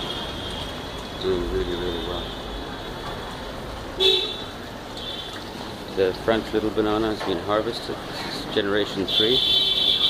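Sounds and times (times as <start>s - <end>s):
street background noise: 0.0s - 10.0s
vehicle horn toot: 4.0s - 5.3s.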